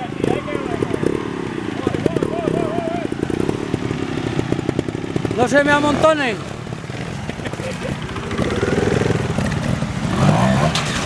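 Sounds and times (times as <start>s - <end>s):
motorcycle engine revving: 0.0s - 11.0s.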